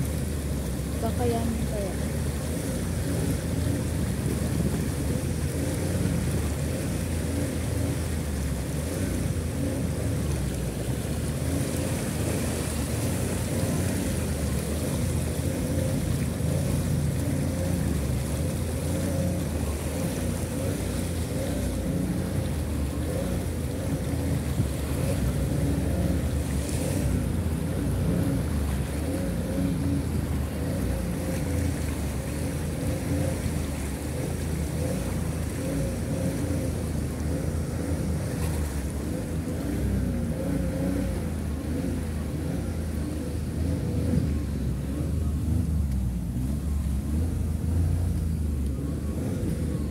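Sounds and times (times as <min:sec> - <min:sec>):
floodwater splashing: 0:00.0 - 0:49.9
vehicle engine rumble: 0:00.0 - 0:49.9.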